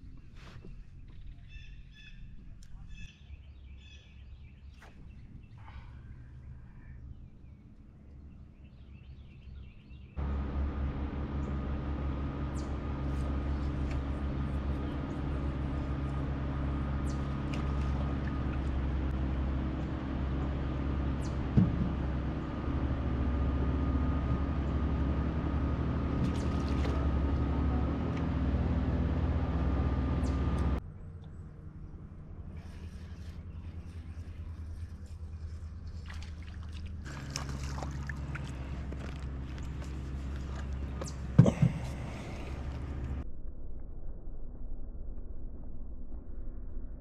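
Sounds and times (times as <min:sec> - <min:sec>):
motor rumbling drone: 0:03.7 - 0:47.0.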